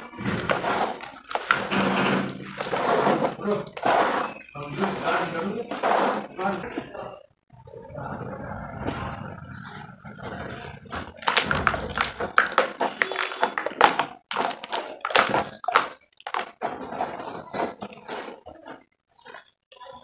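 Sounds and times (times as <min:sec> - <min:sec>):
mud squelching: 0:00.0 - 0:07.2, 0:08.6 - 0:20.0
wet sand crumbling into water: 0:10.8 - 0:16.8.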